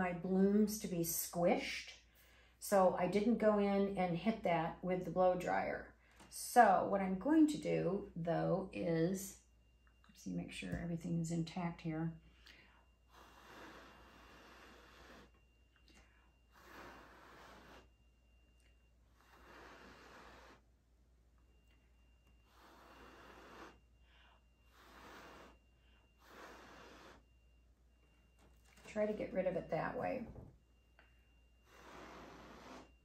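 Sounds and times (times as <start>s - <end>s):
breathy puffs of air: 12.2s - 15.4s, 16.3s - 18.0s, 19.1s - 20.7s, 22.4s - 27.4s, 31.6s - 33.0s.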